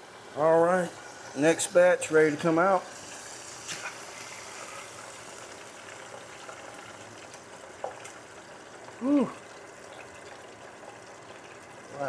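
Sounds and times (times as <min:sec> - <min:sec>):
hot oil bubbling in fryer: 0:00.0 - 0:12.0.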